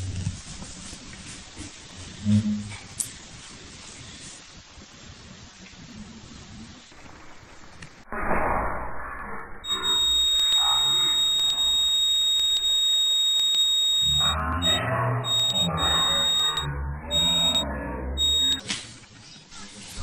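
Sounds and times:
muffled television cartoon sound: 0:00.0 - 0:08.0, 0:14.0 - 0:20.0
high-pitched electronic tone: 0:09.6 - 0:18.6.

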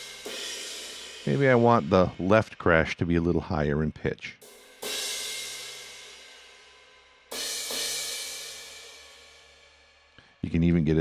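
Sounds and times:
crash cymbal ringing: 0:00.0 - 0:02.8.

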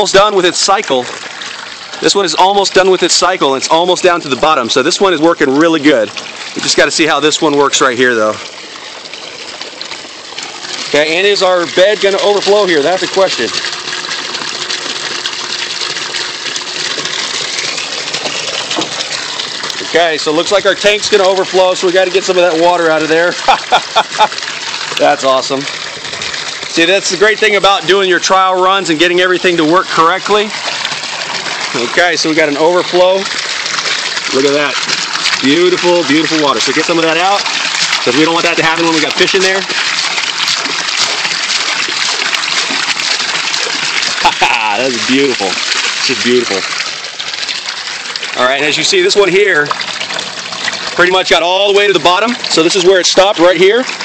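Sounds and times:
water pouring into tank: 0:00.0 - 0:54.0.

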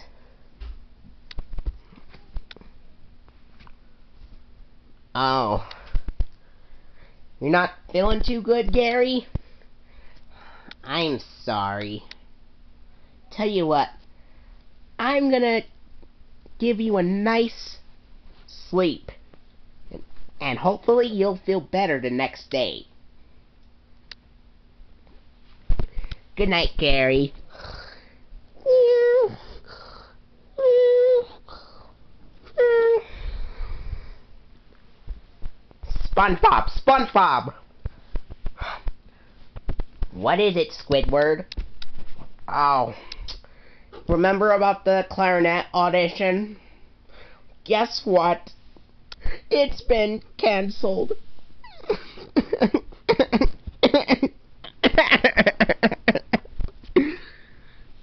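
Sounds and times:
man laughing: 0:51.8 - 0:57.4.

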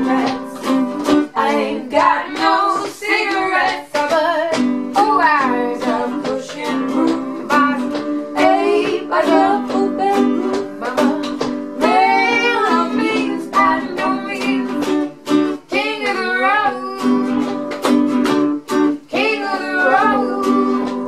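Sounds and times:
women singing together: 0:00.0 - 0:18.0, 0:18.9 - 0:21.0
strummed ukulele: 0:00.0 - 0:21.0.

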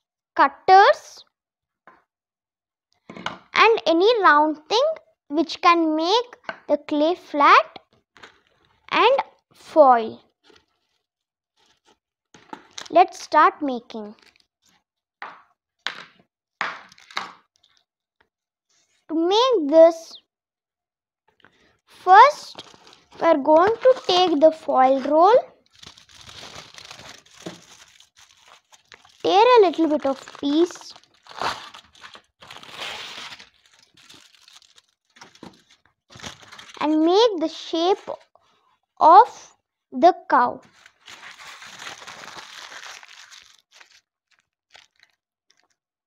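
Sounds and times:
aluminium foil crinkling: 0:14.2 - 0:14.5, 0:22.5 - 0:36.8, 0:40.6 - 0:45.8.

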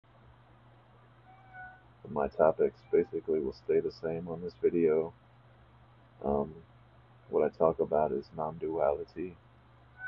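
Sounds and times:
low steady hum: 0:00.1 - 0:10.0.

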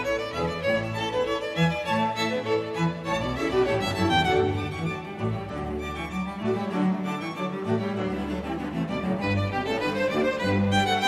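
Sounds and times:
string melody: 0:00.0 - 0:11.0.

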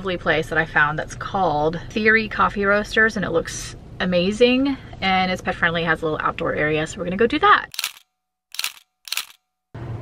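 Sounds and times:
camera shutter clicks: 0:07.8 - 0:08.0, 0:08.6 - 0:09.4.

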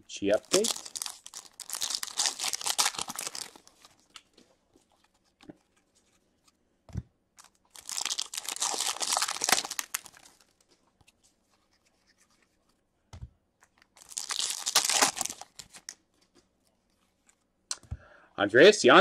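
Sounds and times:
cards rustling when flipped: 0:00.4 - 0:06.6, 0:07.4 - 0:12.8, 0:13.6 - 0:17.8.

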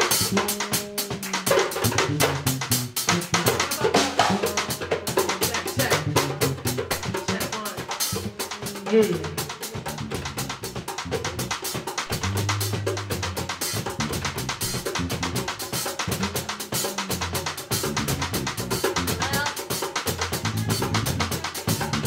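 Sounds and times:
electric bass line: 0:00.0 - 0:19.5, 0:20.1 - 0:22.0
drum kit cymbal and snare: 0:00.0 - 0:22.0.

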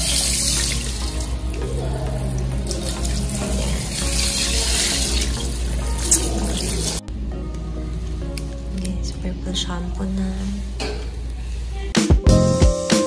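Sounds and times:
water spraying onto wet hair: 0:00.0 - 0:01.6, 0:02.2 - 0:07.0.

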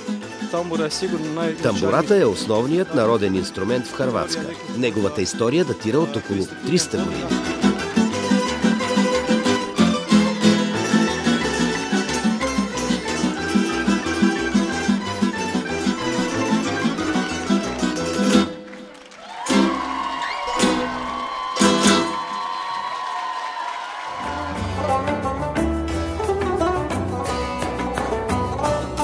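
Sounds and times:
plucked string orchestra: 0:00.0 - 0:22.3, 0:24.2 - 0:29.0
double bass: 0:06.4 - 0:18.5, 0:24.2 - 0:29.0.

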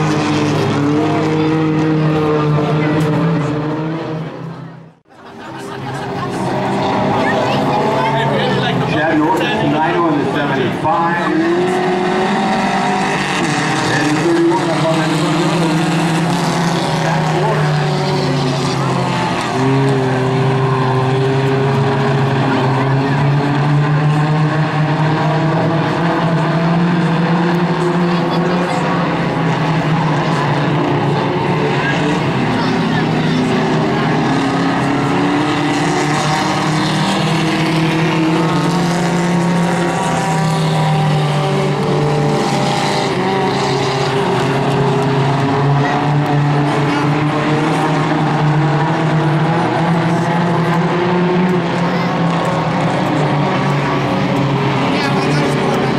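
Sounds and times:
racing car engines: 0:00.0 - 0:55.9.

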